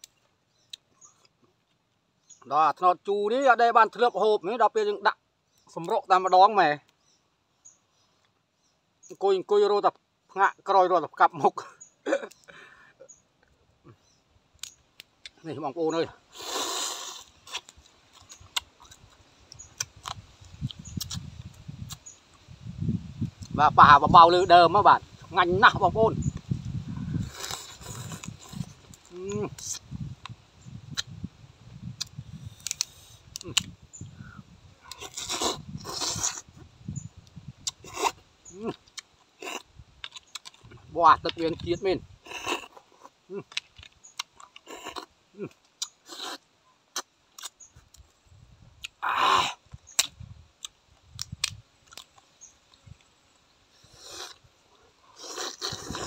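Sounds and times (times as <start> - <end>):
chewing and sucking: 16.3 - 22.1, 27.0 - 29.8, 34.8 - 36.6, 53.7 - 56.0
man chewing with wet smacking: 17.2 - 22.1, 37.6 - 41.7, 42.3 - 48.2.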